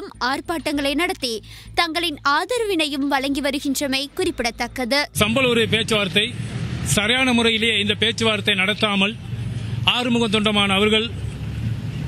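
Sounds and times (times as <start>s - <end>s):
low background rumble: 0.0s - 12.0s
man speaking: 5.2s - 9.2s, 9.8s - 11.2s.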